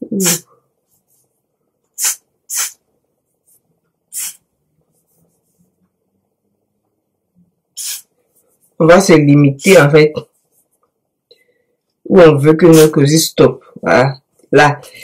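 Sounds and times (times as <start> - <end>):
aerosol spray hissing: 2.0 - 2.8, 4.1 - 4.4, 7.8 - 8.1.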